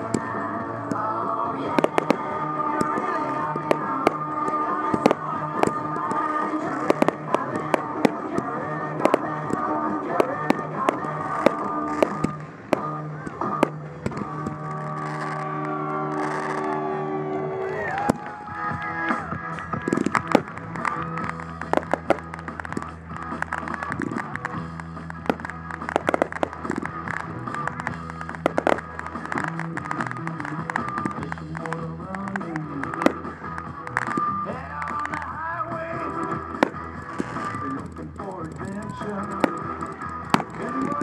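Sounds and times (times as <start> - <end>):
fireworks bursting with bangs: 0.0 - 16.9, 18.0 - 41.0
loud music: 0.0 - 41.0.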